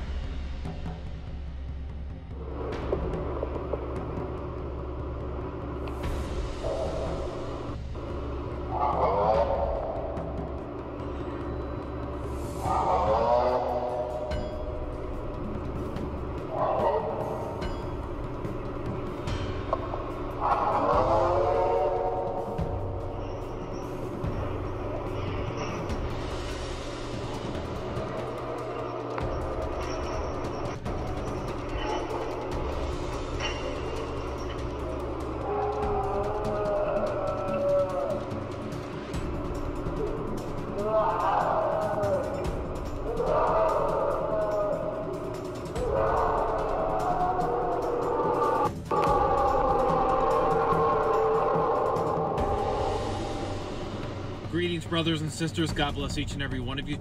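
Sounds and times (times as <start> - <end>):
steady low hum: 0.0 - 57.0
eerie wailing cries: 2.4 - 55.1.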